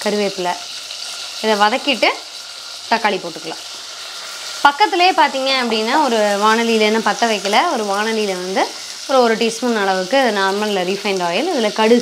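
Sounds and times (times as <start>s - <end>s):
food sizzling in hot oil: 0.0s - 12.0s.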